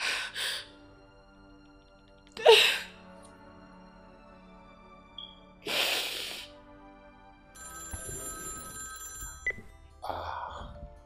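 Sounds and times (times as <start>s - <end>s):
soft background music: 0.0s - 11.0s
mobile phone ringtone: 7.5s - 9.9s
breathy sob: 10.0s - 10.8s.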